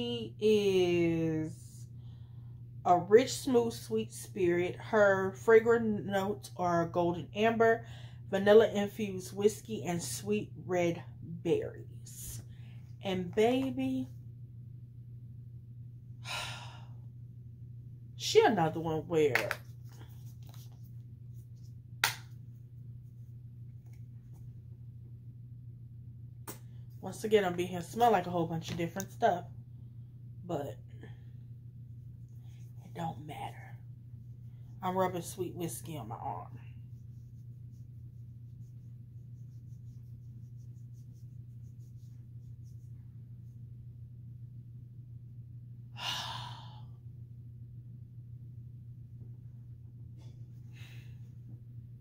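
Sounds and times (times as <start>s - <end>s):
woman sighing: 46.0s - 46.9s.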